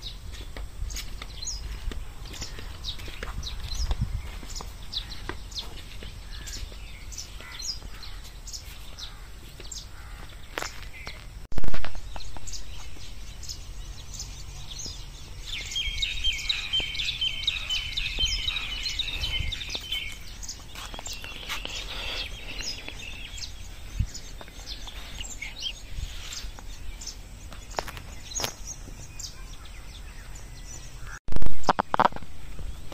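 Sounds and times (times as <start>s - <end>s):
small birds chirping: 0.0s - 32.9s.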